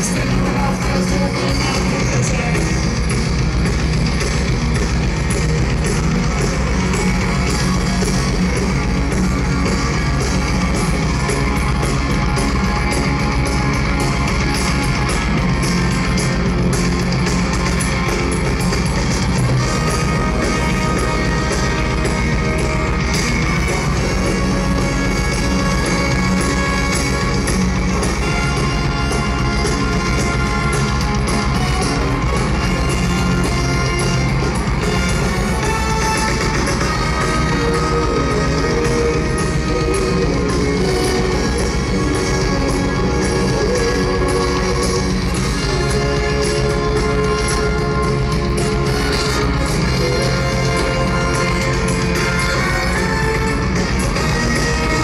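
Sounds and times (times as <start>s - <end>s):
drum kit: 0.0s - 55.0s
electric guitars: 0.0s - 55.0s
rock band playing live: 0.0s - 55.0s.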